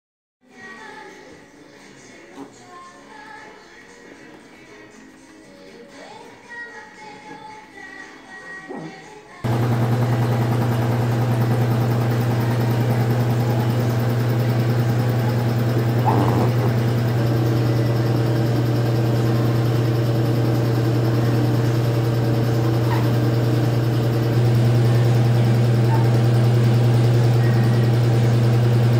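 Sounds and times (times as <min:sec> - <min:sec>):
low mechanical hum: 0:09.5 - 0:28.9.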